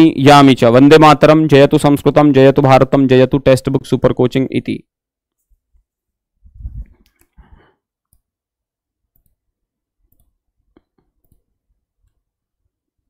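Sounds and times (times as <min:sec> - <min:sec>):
faint scattered clicks: 0:10.1 - 0:12.2.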